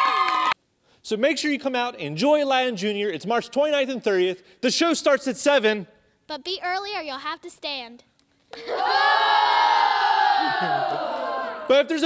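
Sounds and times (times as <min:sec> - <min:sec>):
children cheering: 0:00.0 - 0:00.6, 0:08.6 - 0:11.9.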